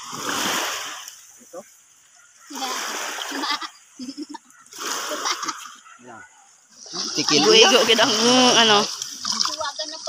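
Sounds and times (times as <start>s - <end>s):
water splashing: 0.0s - 1.7s, 2.4s - 6.1s, 6.7s - 10.0s
short voices: 6.9s - 9.6s.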